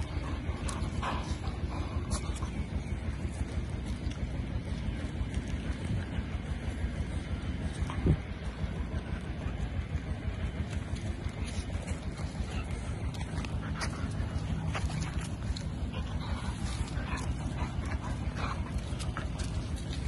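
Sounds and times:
low rumble on microphone: 0:00.0 - 0:20.0
paws scratching and knocking: 0:07.5 - 0:20.0.

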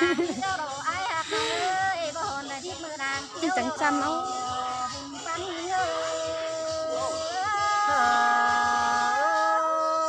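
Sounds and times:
person singing long note: 0:01.2 - 0:01.9, 0:05.8 - 0:10.0.

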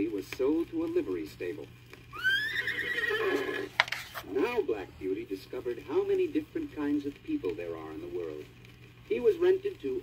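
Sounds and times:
horse whinny: 0:02.1 - 0:03.8.

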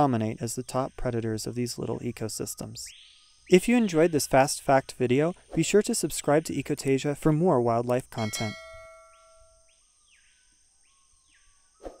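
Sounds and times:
high insect hum: 0:00.0 - 0:12.0.

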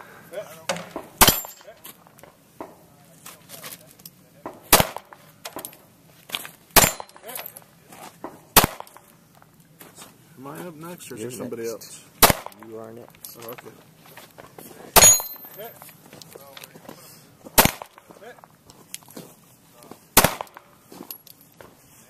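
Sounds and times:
handgun shots: 0:01.2 - 0:01.6, 0:04.7 - 0:05.7, 0:06.8 - 0:07.3, 0:08.6 - 0:09.0, 0:12.2 - 0:12.6, 0:17.6 - 0:18.0, 0:20.2 - 0:20.6.

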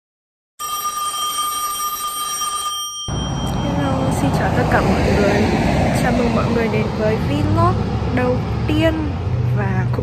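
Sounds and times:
electronic telephone tone: 0:00.6 - 0:04.3.

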